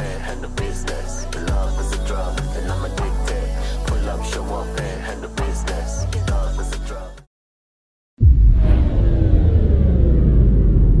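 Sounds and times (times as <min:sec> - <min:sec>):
deep cinematic rumble: 0:08.2 - 0:11.0.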